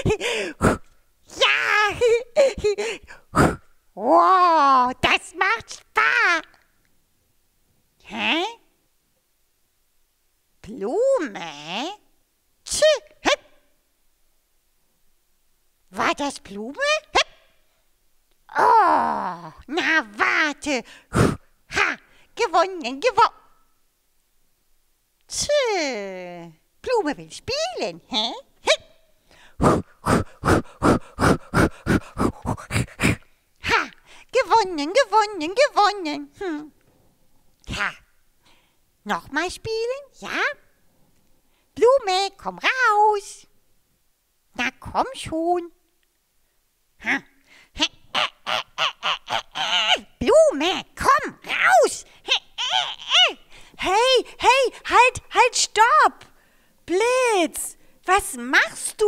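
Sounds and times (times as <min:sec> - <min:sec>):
puff of breath: 0:00.0 - 0:01.0, 0:02.8 - 0:03.7, 0:20.9 - 0:21.5, 0:29.3 - 0:33.4
long wordless cry: 0:18.5 - 0:19.7, 0:29.6 - 0:33.3.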